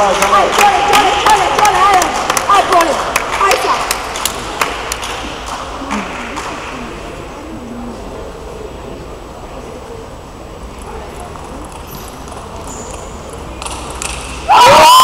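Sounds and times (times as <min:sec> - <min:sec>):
sharp scattered claps: 0:00.0 - 0:06.8
low background murmur: 0:00.0 - 0:15.0
spectators' voices: 0:00.0 - 0:15.0.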